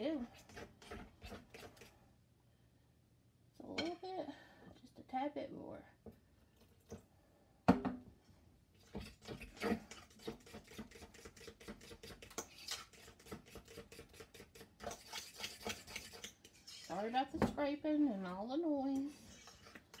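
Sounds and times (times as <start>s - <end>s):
fork scraping a bowl: 0.0s - 2.0s, 8.9s - 17.2s, 19.1s - 20.0s.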